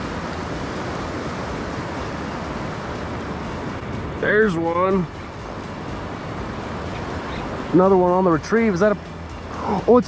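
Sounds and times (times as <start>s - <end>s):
river water rushing: 0.0s - 10.0s.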